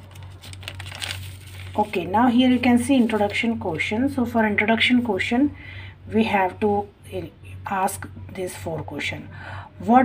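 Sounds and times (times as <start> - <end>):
paper rustling and crinkling: 0.0 - 3.6
low steady hum: 0.0 - 10.0.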